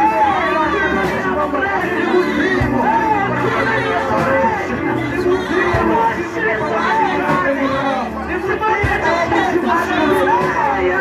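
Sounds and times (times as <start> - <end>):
congregation singing: 0.0 - 11.0
musical backing: 0.0 - 11.0
voices singing on microphones: 0.0 - 11.0.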